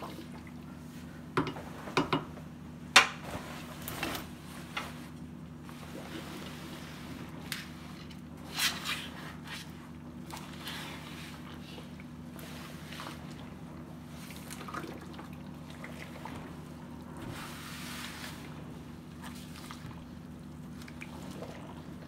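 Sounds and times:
wet clothing sloshing in pot: 3.1s - 22.0s.

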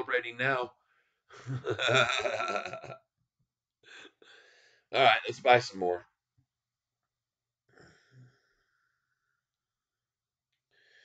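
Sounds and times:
man chuckling: 1.4s - 3.0s.

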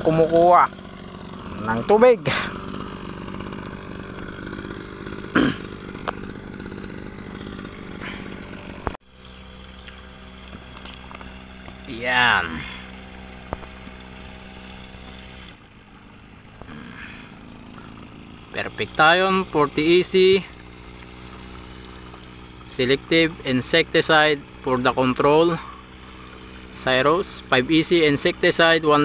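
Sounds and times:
small engine humming: 0.0s - 29.0s.

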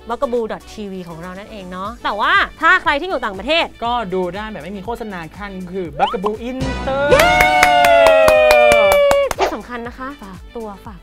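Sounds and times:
fast rhythmic hand clapping: 7.1s - 9.6s.

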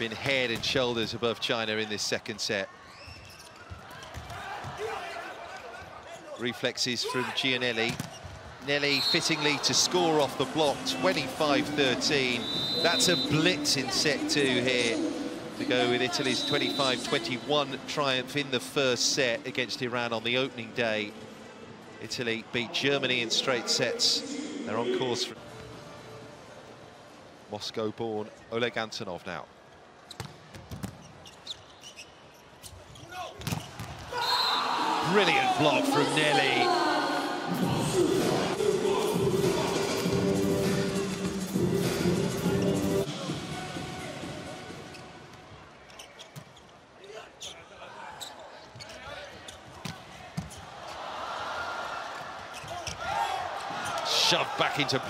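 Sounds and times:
crowd noise: 0.0s - 30.5s, 33.2s - 55.0s.

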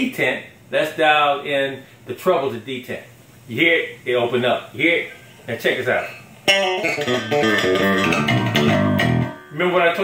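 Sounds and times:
electric bass plucked notes: 6.5s - 9.8s.

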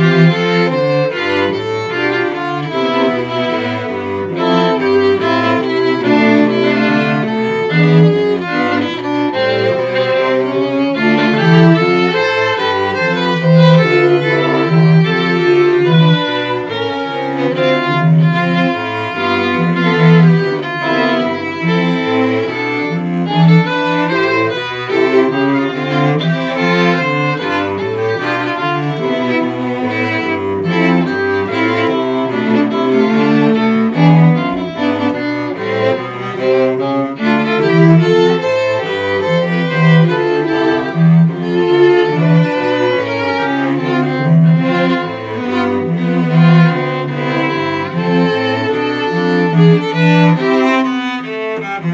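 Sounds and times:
cello repeating low figure: 0.0s - 51.9s
string quartet playing: 0.0s - 51.9s.

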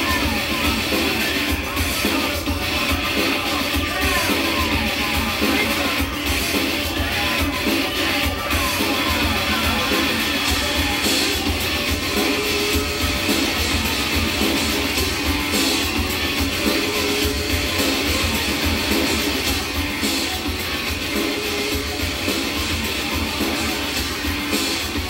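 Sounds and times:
rock music with guitars: 0.0s - 25.0s.

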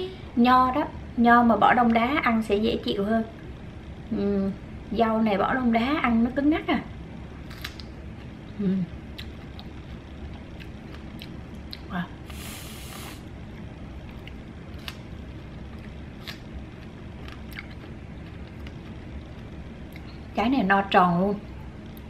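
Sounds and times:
low steady hum: 0.0s - 22.0s
whipped cream can hiss: 12.3s - 13.2s.

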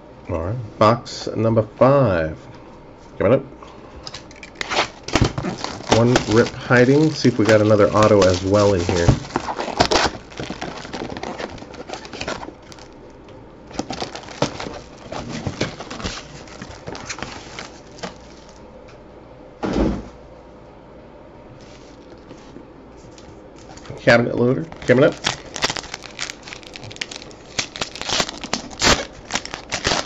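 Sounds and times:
cardboard box handling rustles: 4.7s - 12.9s, 13.7s - 18.6s.

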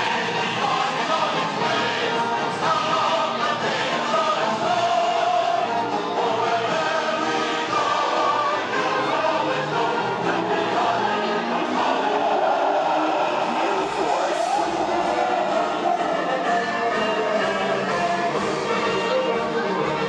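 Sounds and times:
choral music over loudspeakers: 0.0s - 20.0s.

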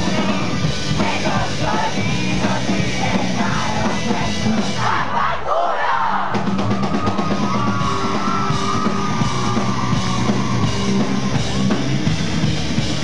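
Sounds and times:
live rock band playing: 0.0s - 5.0s, 6.3s - 13.0s.

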